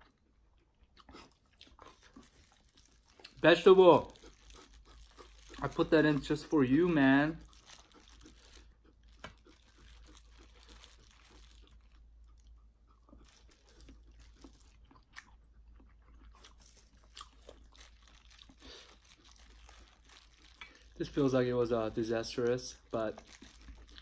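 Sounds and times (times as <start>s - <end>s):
close chewing crunches: 0.0s - 24.0s.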